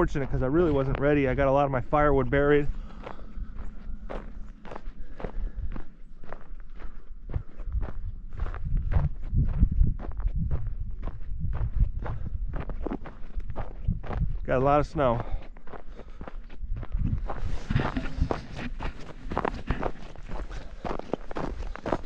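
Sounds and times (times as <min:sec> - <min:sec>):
low rumble: 0:00.0 - 0:15.7, 0:16.5 - 0:21.9
footsteps crunching on icy gravel: 0:00.0 - 0:22.0.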